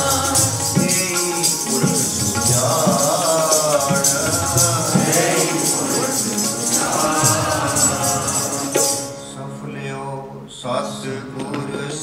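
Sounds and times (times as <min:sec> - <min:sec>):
men singing: 0:00.0 - 0:09.2
harmoniums holding tones: 0:00.0 - 0:09.6.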